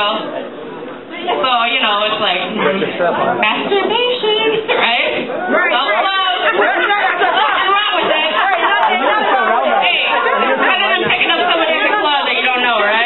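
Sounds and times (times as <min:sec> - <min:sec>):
crowd chatter and calling out: 0:00.0 - 0:13.0.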